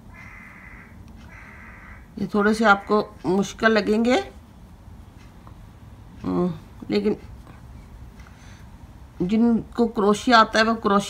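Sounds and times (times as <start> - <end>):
bird harsh calls: 0.0 - 2.1.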